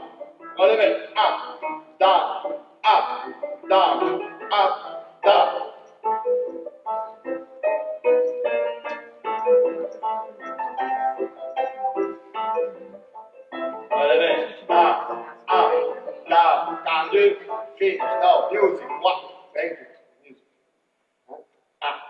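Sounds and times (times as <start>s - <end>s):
man calling or singing along: 0.0s - 5.9s, 13.8s - 19.9s
piano accompaniment in dance rhythm: 0.0s - 19.9s.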